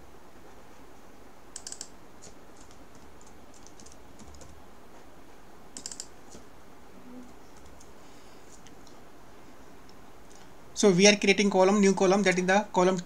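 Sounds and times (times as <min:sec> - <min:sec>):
faint steady hiss: 0:00.0 - 0:13.0
keyboard typing: 0:01.5 - 0:04.6, 0:05.8 - 0:06.4.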